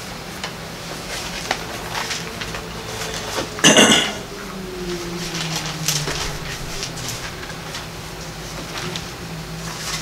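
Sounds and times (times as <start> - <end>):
faint low hum: 0.7 - 10.0.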